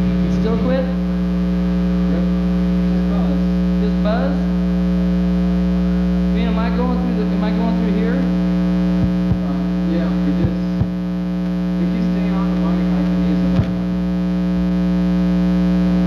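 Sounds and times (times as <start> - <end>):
electrical mains hum: 0.0 - 16.0
faint talking: 9.4 - 10.8.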